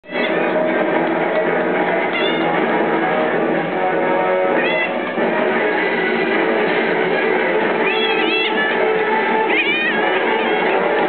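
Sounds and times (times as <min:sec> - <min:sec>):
background guitar music: 0:00.0 - 0:11.0
puppy whining squeals: 0:00.1 - 0:00.4, 0:02.1 - 0:02.5.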